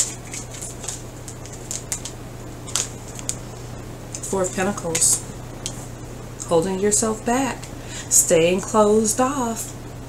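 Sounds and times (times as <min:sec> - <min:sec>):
cards clicking and sliding: 0:02.7 - 0:03.5.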